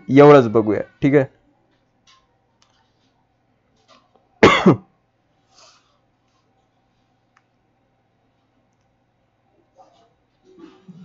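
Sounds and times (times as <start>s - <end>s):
man coughing: 4.4s - 4.9s.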